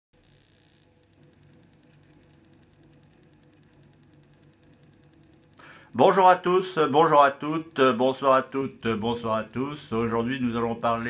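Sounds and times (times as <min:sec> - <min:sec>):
faint high ticking: 0:00.2 - 0:06.0
low steady hum: 0:00.2 - 0:11.0.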